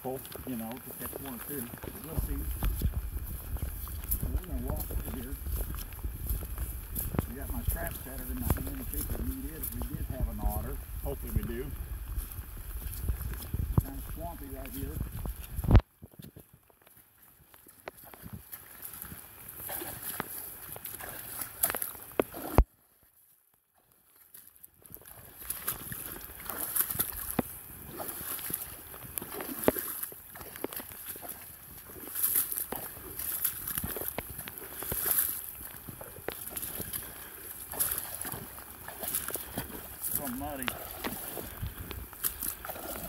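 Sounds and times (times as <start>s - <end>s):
grass brushing against boots: 0.0s - 15.8s, 25.1s - 43.0s
boots squelching through mud: 0.0s - 23.0s, 23.8s - 43.0s.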